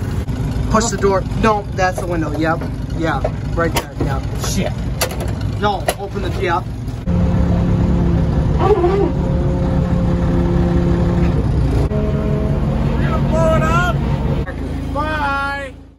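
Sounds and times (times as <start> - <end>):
diesel engine running loudly: 0.0 - 15.9.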